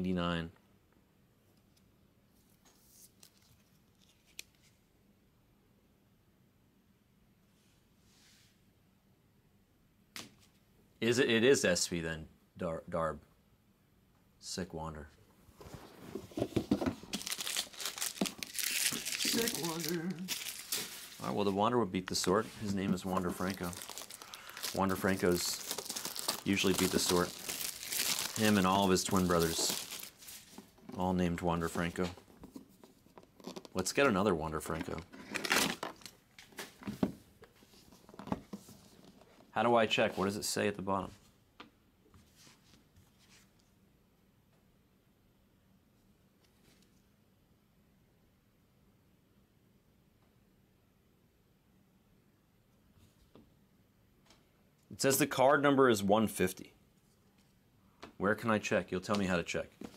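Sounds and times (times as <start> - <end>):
cardboard packaging rustling: 15.6 - 30.9.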